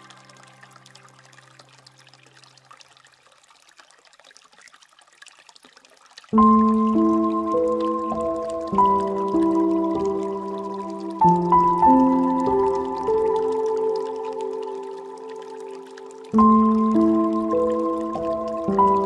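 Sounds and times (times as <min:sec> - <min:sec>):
soft instrumental relaxation music: 0:00.0 - 0:02.8, 0:06.4 - 0:19.0
water trickling from fountain spout: 0:00.0 - 0:19.0.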